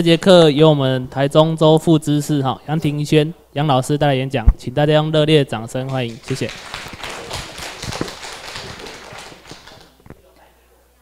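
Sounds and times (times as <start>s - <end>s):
audience applauding: 5.9s - 10.0s.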